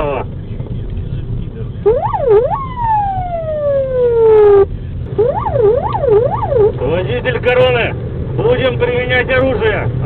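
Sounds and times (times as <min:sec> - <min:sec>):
moving car rumble: 0:00.0 - 0:10.0
police siren wailing: 0:01.8 - 0:07.0.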